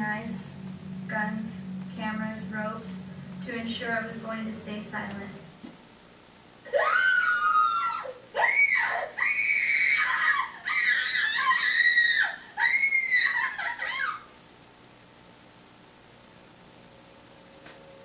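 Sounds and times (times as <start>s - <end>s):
person screaming high-pitched: 6.7s - 14.2s.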